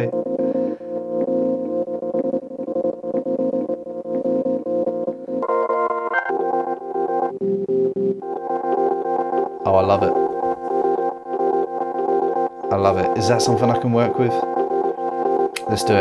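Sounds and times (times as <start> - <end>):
looped warped electric piano chord: 0.0 - 16.0.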